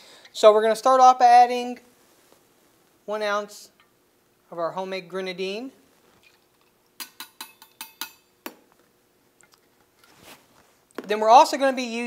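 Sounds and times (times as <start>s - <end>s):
soft rustle: 1.9s - 2.9s, 9.6s - 11.9s
metal jigger clinking on shaker: 6.2s - 8.3s.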